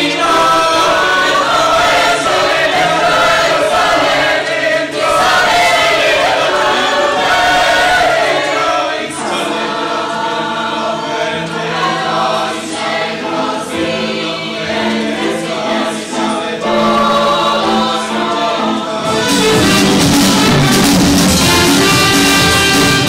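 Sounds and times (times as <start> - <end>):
choir singing in harmony: 0.0 - 23.0.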